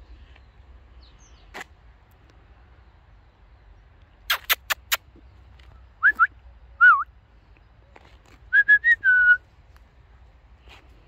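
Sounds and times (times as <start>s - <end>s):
sharp clicks: 4.3s - 5.1s
person whistling: 6.0s - 7.0s, 8.5s - 9.4s.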